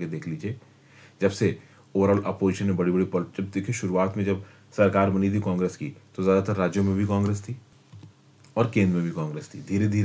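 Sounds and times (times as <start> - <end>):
man lecturing: 0.0 - 0.6, 1.2 - 7.7, 8.6 - 10.0.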